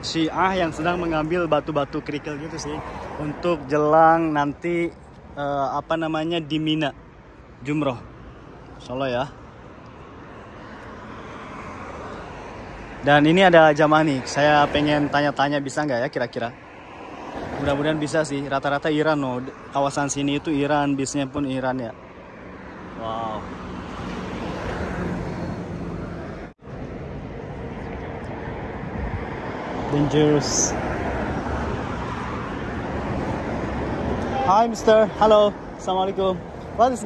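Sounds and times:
bus engine humming: 0:00.0 - 0:04.0
vehicle passing on road: 0:00.0 - 0:37.0.

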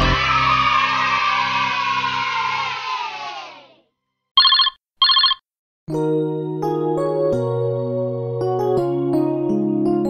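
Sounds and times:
telephone ringing: 0:04.4 - 0:05.4
background music: 0:05.9 - 0:10.0.

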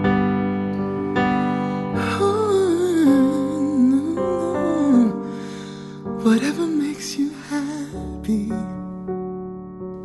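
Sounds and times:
piano chords: 0:00.0 - 0:10.0.

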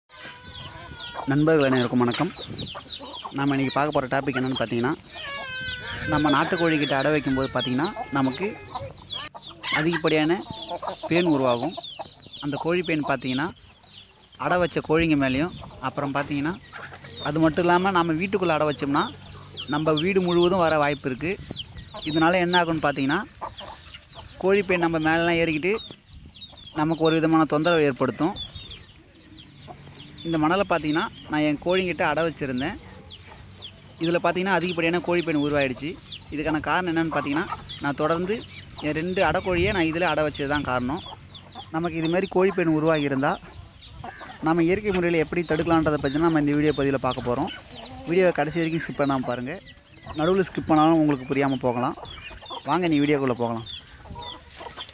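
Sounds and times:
chicken calling: 0:00.1 - 0:54.9
hen clucking: 0:00.1 - 0:54.9.

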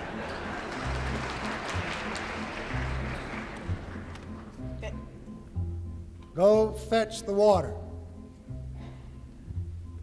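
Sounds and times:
audience noise: 0:00.0 - 0:04.6.

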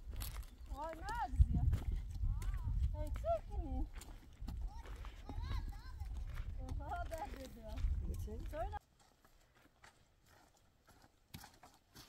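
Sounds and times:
wind rumble on microphone: 0:00.0 - 0:08.8
footsteps on loose stony ground: 0:00.0 - 0:12.0.

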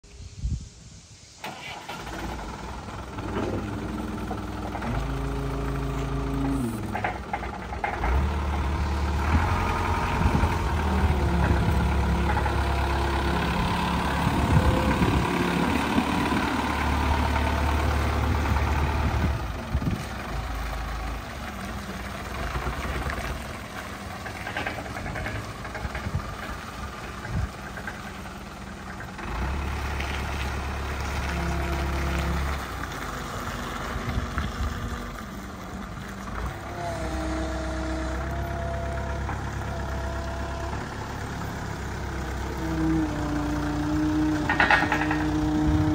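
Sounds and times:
forklift diesel engine revving: 0:01.4 - 0:45.9.

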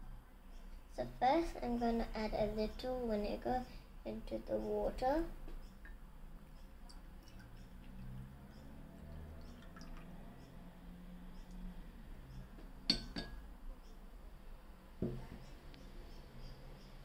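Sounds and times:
liquid trickling into glass: 0:06.8 - 0:10.6
bowl clinking against glass: 0:12.9 - 0:13.4.

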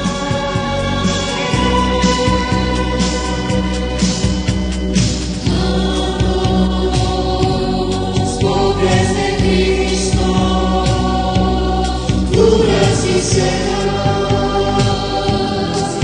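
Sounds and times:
choir singing a hymn: 0:00.0 - 0:16.0
instrumental accompaniment with low bass: 0:00.0 - 0:16.0.

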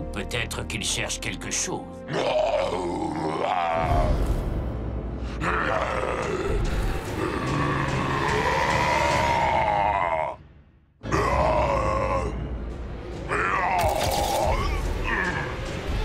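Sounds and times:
cartoon monster roaring: 0:02.1 - 0:04.4, 0:05.4 - 0:10.4, 0:11.0 - 0:12.4, 0:13.2 - 0:15.7.

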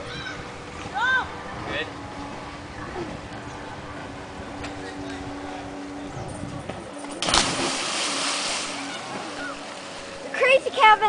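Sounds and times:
churning water: 0:00.0 - 0:11.0
loud splash into water: 0:07.2 - 0:09.2.

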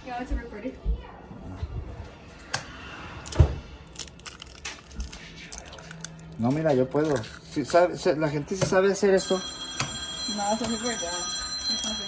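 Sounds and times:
egg shell crunching: 0:03.2 - 0:07.8.

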